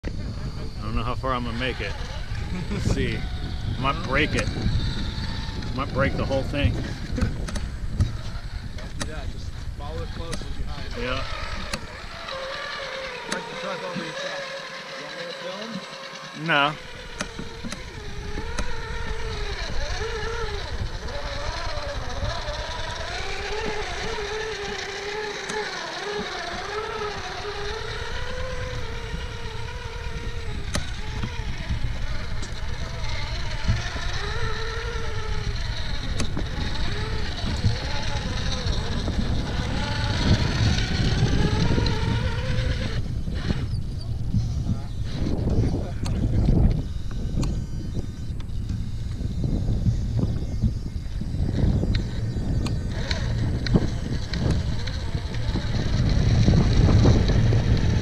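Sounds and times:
rc car motor whining: 0.0s - 58.0s
rough low motor rumble: 0.0s - 58.0s.

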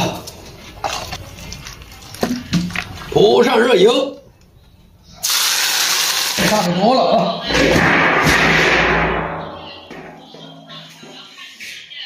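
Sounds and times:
hot oil sizzling: 5.2s - 6.7s.

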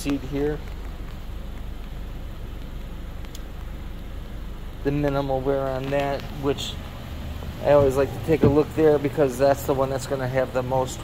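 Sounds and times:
background hum: 0.0s - 11.0s
car engine idling: 0.0s - 11.0s.

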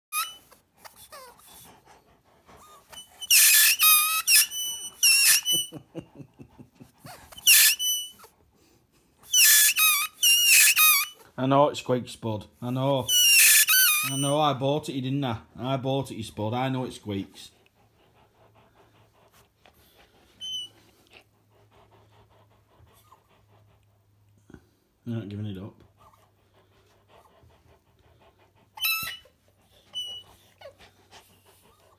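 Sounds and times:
squeaky toy ball squeaking: 0.1s - 1.6s, 2.6s - 5.8s, 7.3s - 8.3s, 9.2s - 11.3s, 13.0s - 14.5s, 20.4s - 20.8s, 28.7s - 30.8s
dog panting: 0.2s - 31.9s.

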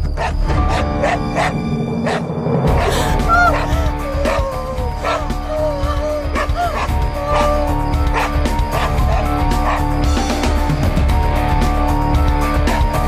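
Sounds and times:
high whimpering cries: 2.8s - 9.9s.

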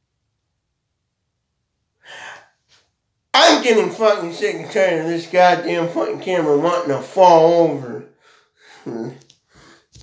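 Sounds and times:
man gasping breath: 2.0s - 2.6s, 8.1s - 10.0s.

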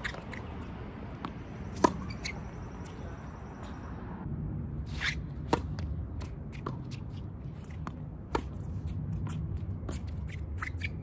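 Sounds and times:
racket striking tennis ball: 1.2s - 2.4s, 4.9s - 10.9s
tennis ball bouncing on court: 1.2s - 2.4s, 5.4s - 10.9s.

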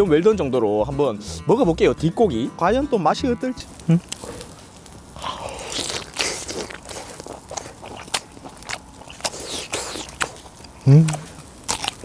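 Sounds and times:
chewing with clicks and crunches: 4.0s - 12.0s.

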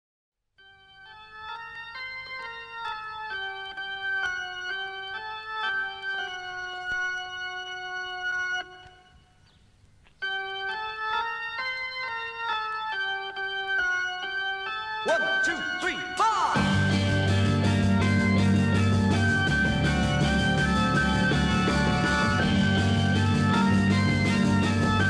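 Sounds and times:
organ playing held chords: 0.6s - 9.4s, 10.2s - 25.0s.

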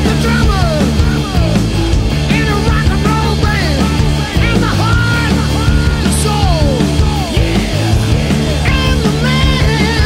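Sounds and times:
lead vocal singing: 0.0s - 10.0s
rock band playing: 0.0s - 10.0s.

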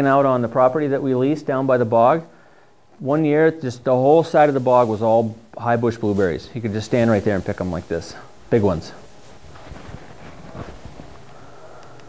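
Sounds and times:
low room hum: 0.0s - 12.0s
faint soft sounds: 2.2s - 12.0s.

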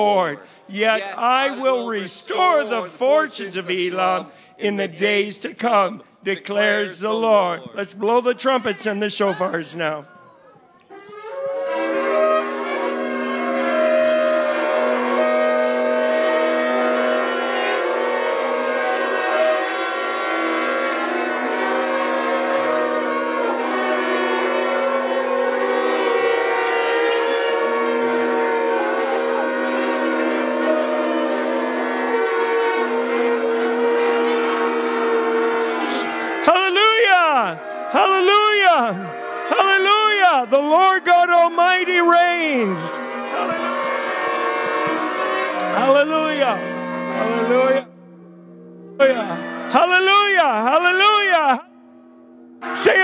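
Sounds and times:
shofars and trumpet blast: 0.0s - 7.6s, 11.2s - 53.0s.

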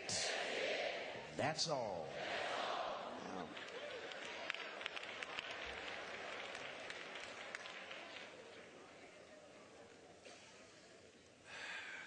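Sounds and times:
congregation applauding: 3.4s - 8.8s.

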